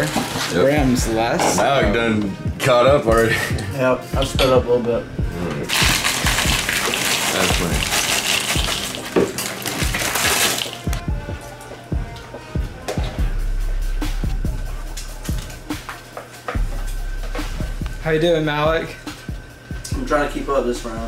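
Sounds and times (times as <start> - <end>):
background music with steady beat: 0.0 - 21.0
cereal pouring into plastic bowl: 5.7 - 10.8.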